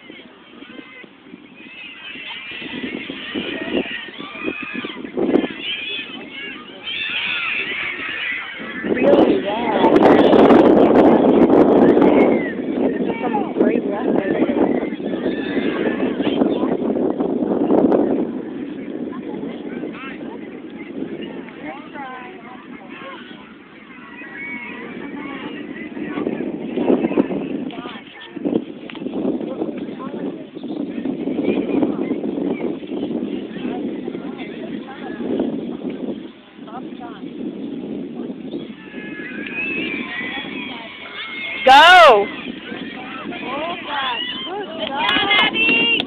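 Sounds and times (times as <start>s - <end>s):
distant shouts: 0.0s - 16.7s, 19.8s - 28.1s, 38.4s - 46.0s
distant voices calling out: 0.0s - 17.0s, 18.5s - 46.0s
microphone rumble: 0.0s - 46.0s.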